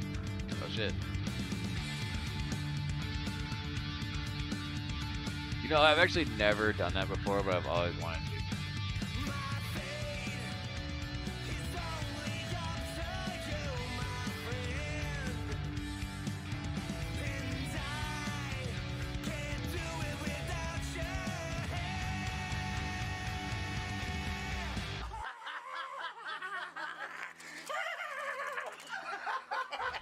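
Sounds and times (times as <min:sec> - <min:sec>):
punk rock song: 0:00.0 - 0:25.2.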